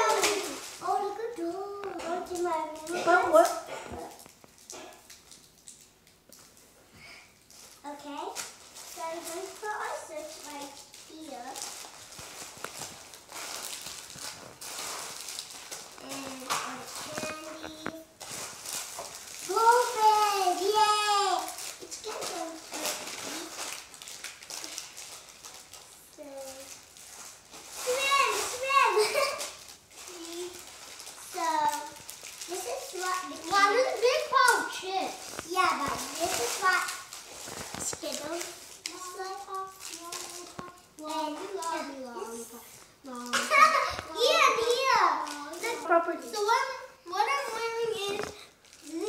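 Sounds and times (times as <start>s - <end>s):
children chattering: 0.0s - 4.2s, 31.3s - 37.0s, 38.1s - 48.2s
plastic wrappers crinkling: 0.0s - 49.0s.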